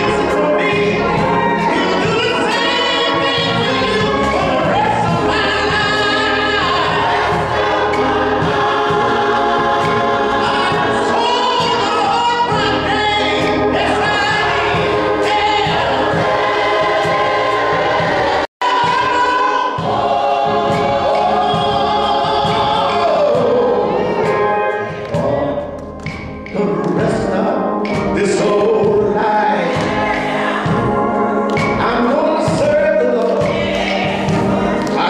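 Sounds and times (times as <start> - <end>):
male soloist singing: 0.0 - 8.1, 9.9 - 15.8, 21.2 - 25.8, 26.5 - 30.0, 31.7 - 35.0
gospel choir singing: 0.0 - 35.0
organ accompaniment: 0.0 - 35.0.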